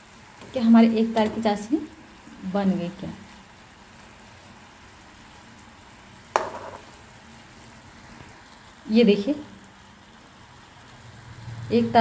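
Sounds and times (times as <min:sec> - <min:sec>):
syrup bubbling in a pan: 0:00.0 - 0:12.0
spoon knocking on pan: 0:06.3 - 0:07.0.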